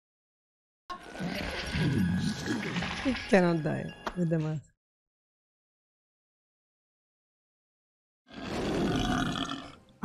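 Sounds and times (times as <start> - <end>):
man belching: 8.7 - 10.0.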